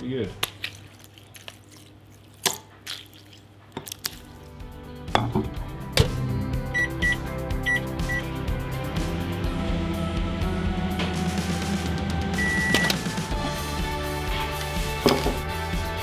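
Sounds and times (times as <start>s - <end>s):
music: 4.1s - 16.0s
microwave keypad beeps: 6.7s - 8.3s, 12.4s - 13.0s.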